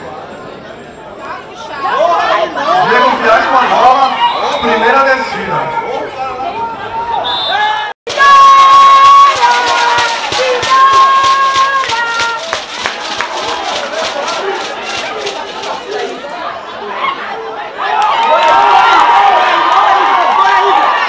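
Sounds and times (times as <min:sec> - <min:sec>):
crowd shouting and cheering: 0:01.3 - 0:21.0
long drawn-out yells: 0:05.6 - 0:12.6, 0:16.8 - 0:21.0
quick sharp beats: 0:08.1 - 0:16.2.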